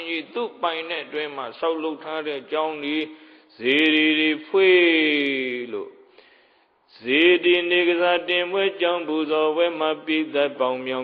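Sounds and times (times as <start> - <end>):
person preaching in chant-like cadence: 0.0 - 6.1, 6.9 - 11.0.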